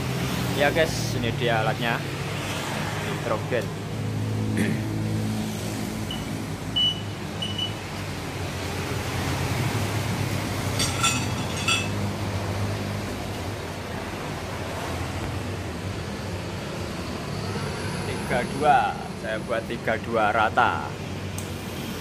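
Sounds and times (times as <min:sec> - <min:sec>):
low traffic rumble: 0:00.0 - 0:22.0
short electronic beeps: 0:06.1 - 0:07.8.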